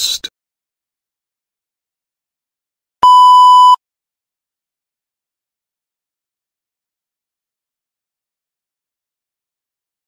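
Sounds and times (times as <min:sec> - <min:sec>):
loud electronic beep: 0:03.0 - 0:03.8.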